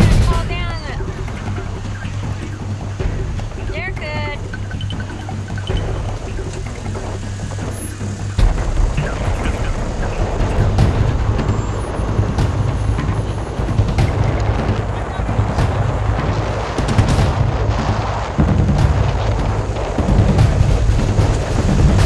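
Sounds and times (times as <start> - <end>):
car engine running at low revs: 0.0 - 22.0.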